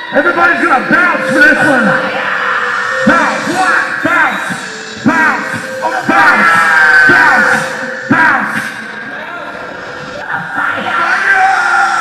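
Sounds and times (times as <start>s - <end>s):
rapper yelling into microphone: 0.0s - 12.0s
heavy backing beat: 2.9s - 11.2s.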